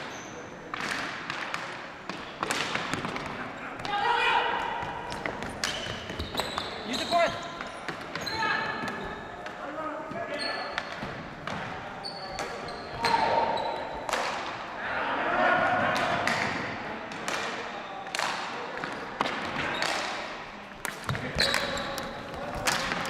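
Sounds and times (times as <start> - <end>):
hockey sticks knocking: 0.7 - 9.7, 10.7 - 11.8, 14.0 - 14.6, 16.0 - 23.0
ball striking floor and boards: 0.7 - 14.6, 15.8 - 20.2, 20.8 - 23.0
players shouting: 14.7 - 16.5.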